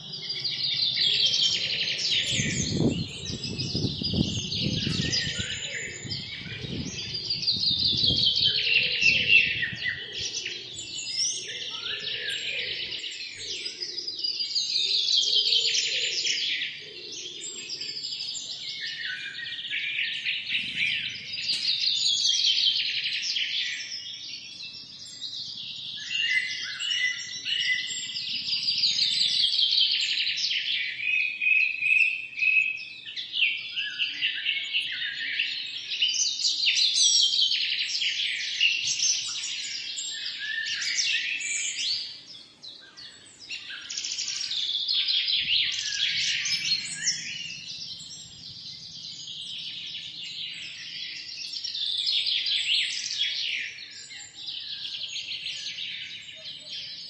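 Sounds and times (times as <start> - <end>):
birds chirping: 0.0 - 31.1, 33.1 - 57.0.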